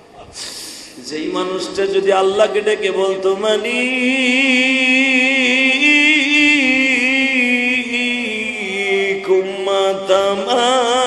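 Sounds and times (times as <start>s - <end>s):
man chanting: 0.9s - 11.0s.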